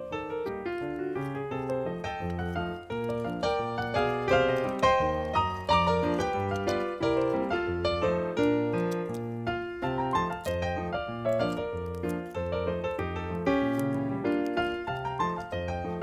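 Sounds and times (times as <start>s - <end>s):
piano music: 0.0s - 16.0s.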